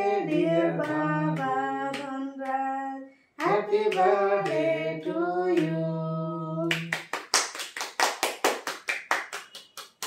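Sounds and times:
people clapping in rhythm: 0.0 - 2.7, 3.4 - 10.0.

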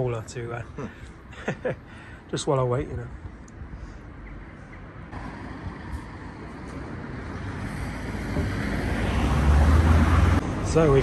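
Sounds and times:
rumble of passing vehicles: 0.0 - 11.0.

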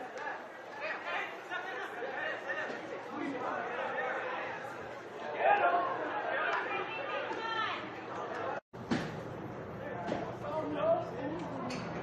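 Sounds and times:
indistinct chatter of voices: 0.0 - 8.6.

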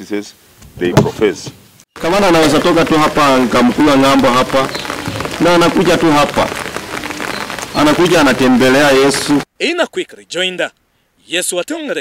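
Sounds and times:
man speaking into a microphone: 0.0 - 6.6, 7.7 - 12.0
rain falling on umbrellas: 2.0 - 9.5.

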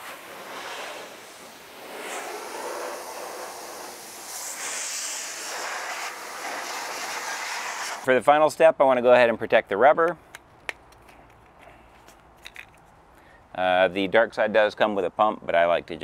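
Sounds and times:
car dryer blowing air: 0.0 - 8.0.

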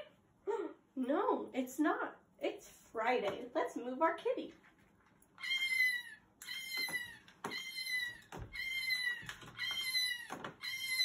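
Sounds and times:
cat meowing: 5.4 - 11.0.

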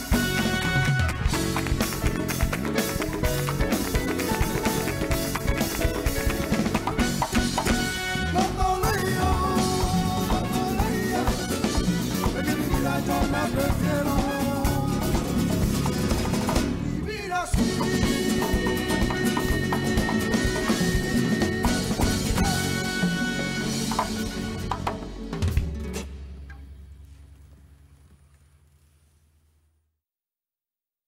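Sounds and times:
strummed acoustic guitars: 0.0 - 26.6
man singing: 8.0 - 15.8, 17.0 - 23.7.

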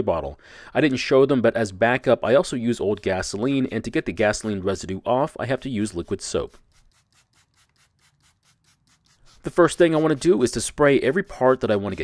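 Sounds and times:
spray bottle spritzing: 5.8 - 10.7.

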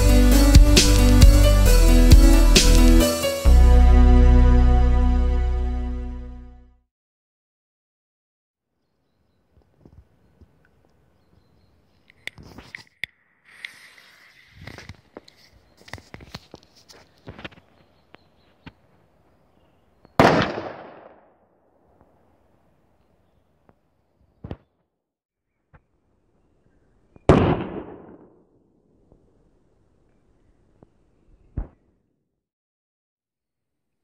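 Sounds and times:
light clicks and rustling: 14.6 - 18.8
firecracker bang echoing: 20.2 - 21.3, 27.3 - 28.4.

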